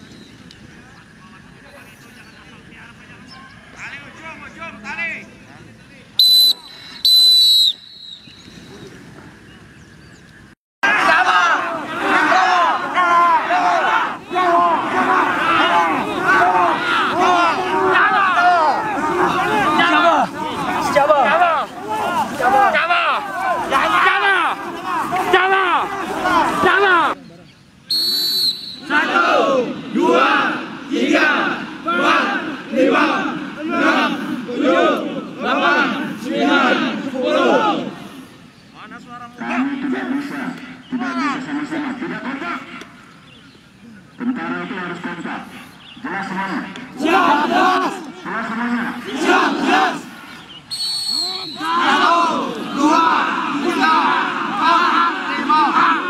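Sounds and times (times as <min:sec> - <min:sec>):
whistle blast: 0:06.2 - 0:08.6, 0:27.9 - 0:29.2, 0:50.7 - 0:52.1
group shouting together: 0:10.8 - 0:27.2, 0:28.8 - 0:38.0, 0:46.2 - 0:50.2, 0:51.4 - 0:56.0.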